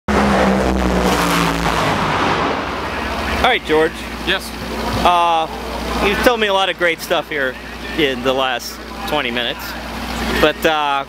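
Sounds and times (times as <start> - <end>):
engine running: 0.1 - 11.0
racetrack pit noise: 0.1 - 11.0.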